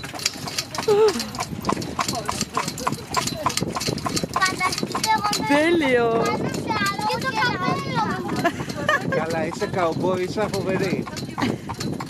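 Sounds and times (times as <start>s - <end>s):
horse hooves clip-clopping: 0.0s - 12.0s.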